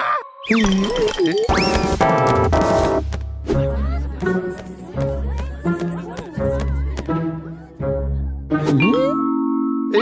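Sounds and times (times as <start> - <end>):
cartoon music: 0.2 - 2.2, 8.5 - 10.0.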